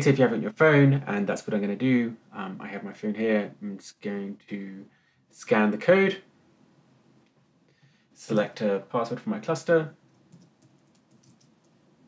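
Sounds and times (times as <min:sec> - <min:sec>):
computer keyboard typing: 0:10.1 - 0:11.8.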